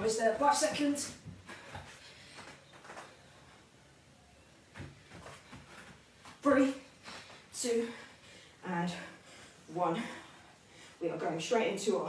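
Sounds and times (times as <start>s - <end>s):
knocks and rustles on foam mat: 4.7s - 6.4s.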